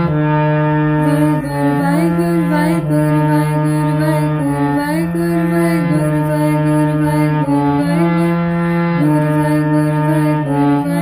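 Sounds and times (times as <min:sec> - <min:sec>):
harmonium melody: 0:00.0 - 0:11.0
person chanting: 0:01.0 - 0:11.0.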